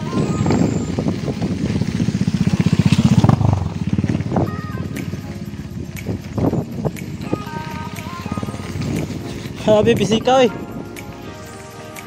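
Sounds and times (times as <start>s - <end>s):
small engine running: 0.0s - 7.0s.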